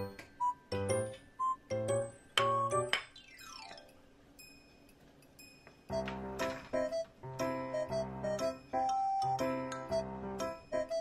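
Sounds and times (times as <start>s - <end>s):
cheerful bouncy background music: 0.0s - 4.6s, 5.4s - 11.0s.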